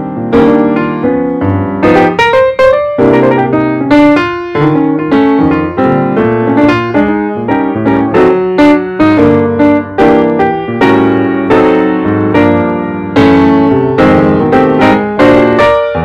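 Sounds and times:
piano music: 0:00.0 - 0:16.0.

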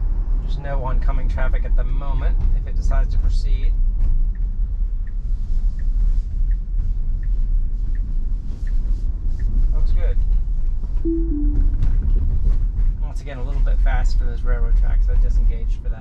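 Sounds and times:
road and tyre rumble: 0:00.0 - 0:11.0
turn signal ticking: 0:04.2 - 0:09.7
two-note falling chime: 0:11.1 - 0:11.8.

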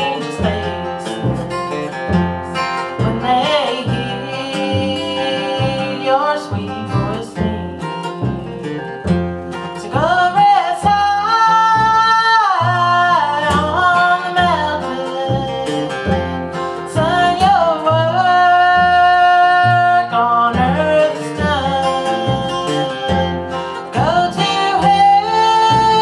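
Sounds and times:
woman singing slow ballad: 0:00.0 - 0:08.0, 0:09.8 - 0:26.0
acoustic guitar: 0:00.0 - 0:26.0
plucked upright bass: 0:00.0 - 0:26.0.

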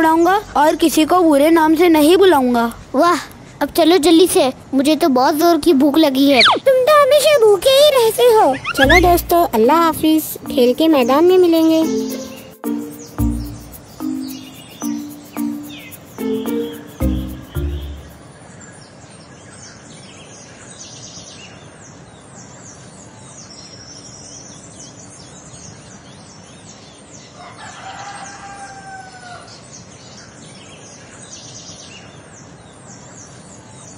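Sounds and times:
small birds chirping: 0:00.0 - 0:27.5
music note: 0:11.7 - 0:18.2
rooster crowing: 0:27.4 - 0:29.5.

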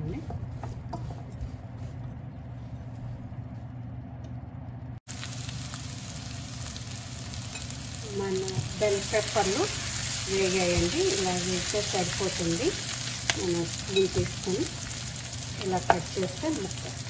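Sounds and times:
steady low hum: 0:00.0 - 0:17.0
peppers sizzling in oil: 0:05.1 - 0:17.0.

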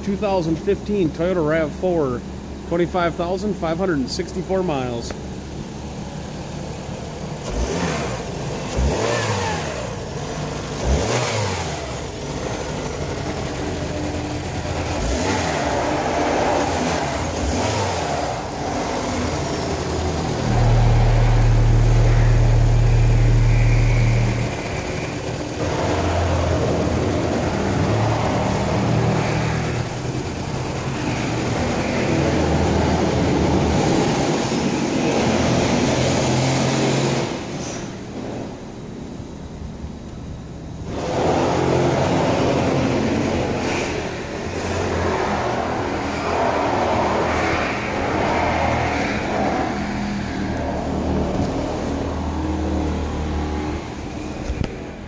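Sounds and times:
car engine running: 0:00.0 - 0:55.0.

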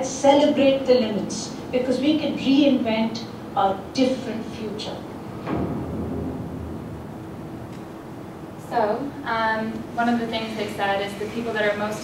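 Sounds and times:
faint steady hum: 0:00.0 - 0:12.0
deep low rumble: 0:05.5 - 0:08.8.

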